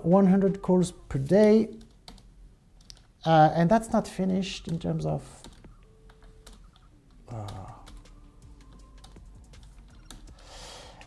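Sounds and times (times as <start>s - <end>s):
computer keyboard keystrokes: 4.6s - 10.4s.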